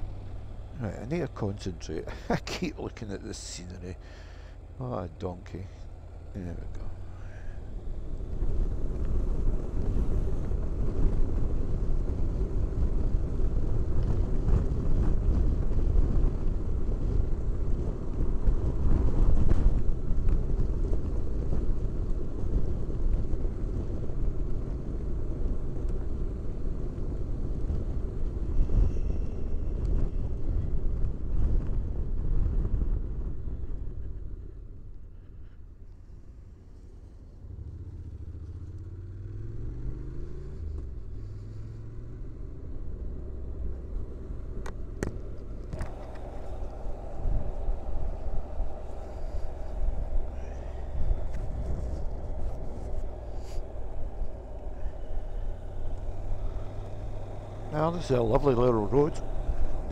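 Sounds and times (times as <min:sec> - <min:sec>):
wind noise: 0:00.0 - 0:36.1, 0:38.6 - 0:59.9
road rush: 0:00.0 - 0:59.9
motorcycle engine: 0:37.3 - 0:59.9.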